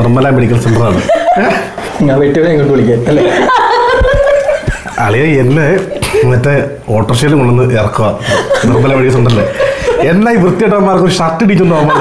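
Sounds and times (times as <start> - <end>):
people talking: 0.0 - 12.0
people chuckling: 0.7 - 2.0, 3.0 - 6.6, 8.2 - 10.8, 11.6 - 12.0.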